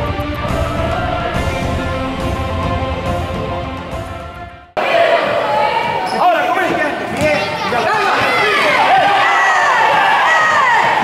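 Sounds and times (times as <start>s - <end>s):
players shouting: 4.8s - 11.0s.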